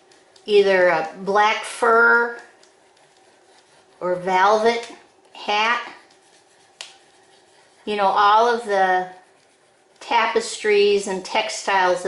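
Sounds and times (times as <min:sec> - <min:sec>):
crayon rubbing on paper: 0:00.1 - 0:11.3
person speaking: 0:00.4 - 0:09.4, 0:10.0 - 0:12.0.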